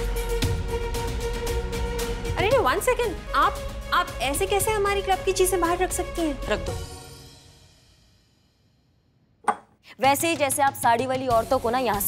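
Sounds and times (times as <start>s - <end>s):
background music: 0.0s - 8.4s, 9.5s - 12.0s.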